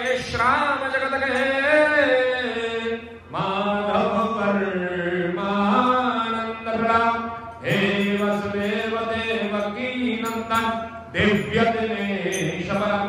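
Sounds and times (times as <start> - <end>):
person chanting a devotional hymn: 0.0 - 13.0.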